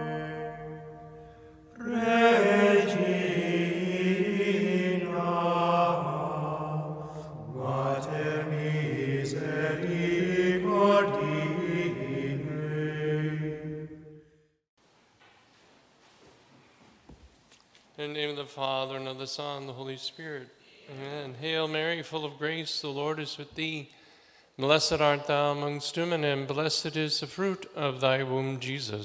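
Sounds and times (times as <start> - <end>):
voices chanting long notes: 0.0 - 14.0.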